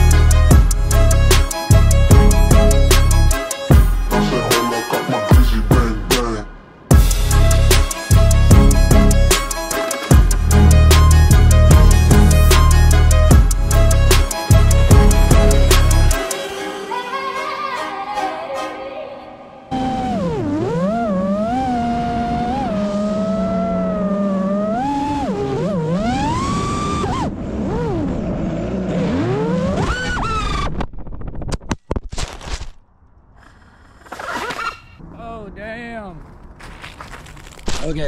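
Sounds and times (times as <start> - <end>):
quadcopter motors whining: 19.7 - 28.1.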